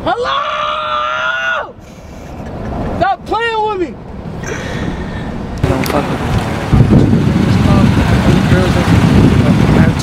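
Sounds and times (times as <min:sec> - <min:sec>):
low rumble inside car: 0:04.4 - 0:10.0.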